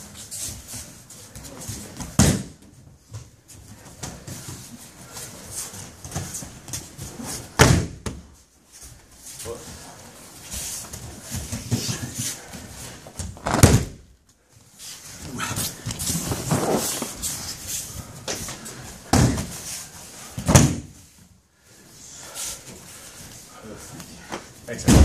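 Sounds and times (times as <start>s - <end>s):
bodies thudding onto mats: 2.0s - 2.6s, 6.0s - 8.3s, 13.1s - 14.1s, 15.3s - 17.5s, 18.2s - 19.7s, 20.3s - 21.0s.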